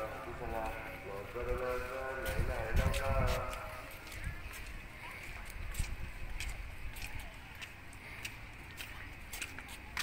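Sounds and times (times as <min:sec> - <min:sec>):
wind buffeting microphone: 0:00.0 - 0:08.0
people talking: 0:00.0 - 0:10.0.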